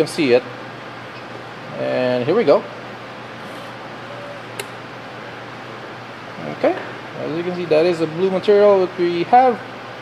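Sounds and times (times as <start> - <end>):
steady low hiss: 0.0 - 10.0
sharp click: 4.5 - 4.8.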